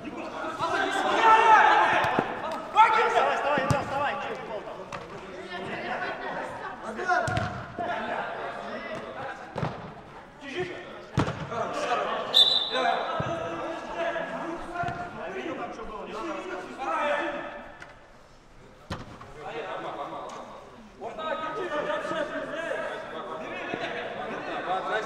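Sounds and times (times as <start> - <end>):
players calling out in hall: 0.0 - 18.3.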